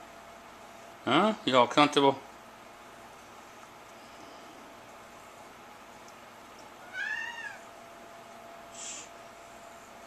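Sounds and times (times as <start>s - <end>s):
cat meowing: 6.8s - 7.7s.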